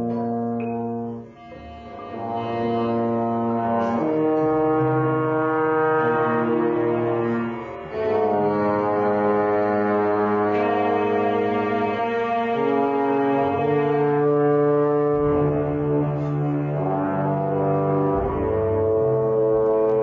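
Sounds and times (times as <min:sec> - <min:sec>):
trombone playing low held notes: 0:00.0 - 0:20.0.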